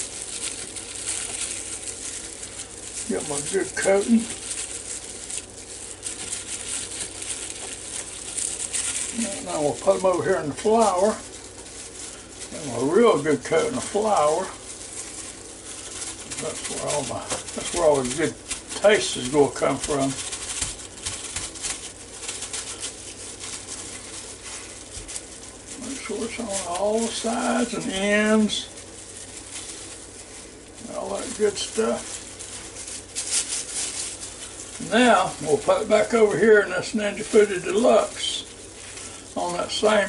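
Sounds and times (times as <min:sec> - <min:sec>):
plastic glove crinkling: 0:00.0 - 0:40.0.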